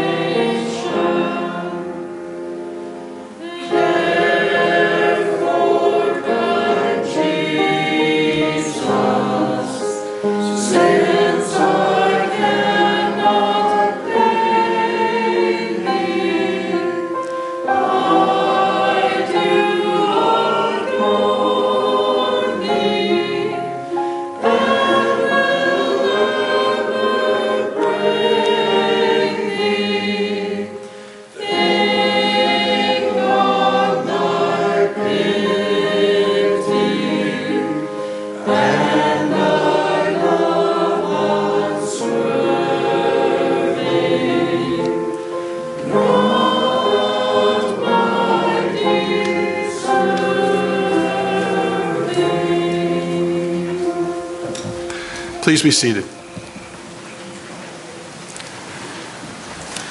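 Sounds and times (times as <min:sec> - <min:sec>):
choir singing: 0:00.0 - 0:59.2.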